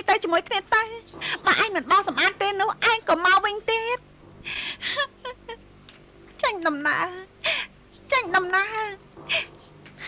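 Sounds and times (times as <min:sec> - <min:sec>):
woman sobbing: 0:04.5 - 0:05.6, 0:07.4 - 0:07.8.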